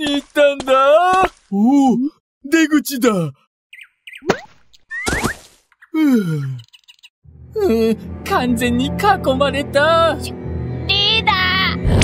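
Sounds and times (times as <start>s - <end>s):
cartoon pop with rising squeak: 4.2s - 5.4s.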